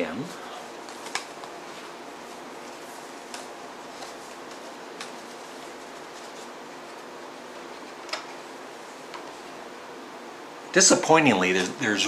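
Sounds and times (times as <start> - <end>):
room hiss: 0.0 - 12.0
cd case clicks and rustles: 0.8 - 1.8, 3.2 - 5.4, 7.9 - 8.4.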